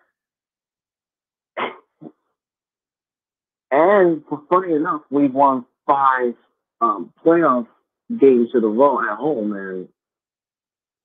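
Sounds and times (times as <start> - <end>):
person coughing: 1.6 - 2.2.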